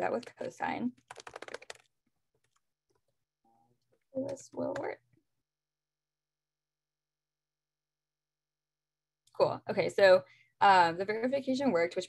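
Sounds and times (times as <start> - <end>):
computer keyboard keystrokes: 1.0 - 2.6.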